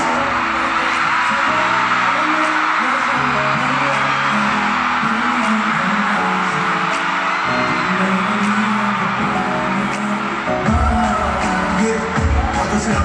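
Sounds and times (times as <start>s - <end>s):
male vocal singing: 0.0s - 13.0s
pop song over sound system: 0.0s - 13.0s.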